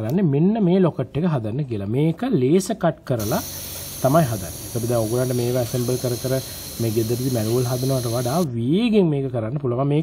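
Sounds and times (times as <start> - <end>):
laser cutter hissing: 3.2 - 8.5
man talking: 4.0 - 10.0.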